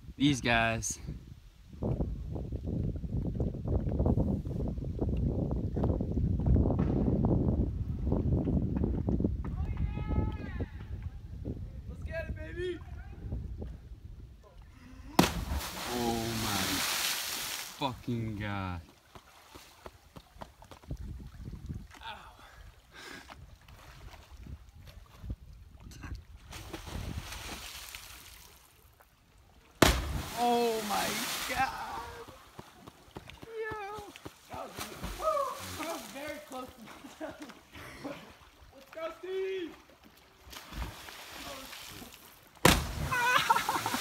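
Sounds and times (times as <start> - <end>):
body hitting water with crack: 15.2 - 17.8, 29.8 - 32.2, 34.6 - 36.4, 40.5 - 44.0
water splash: 15.2 - 17.8, 29.8 - 32.0, 40.4 - 44.0
people shouting and whooping: 35.1 - 36.0, 43.0 - 44.0.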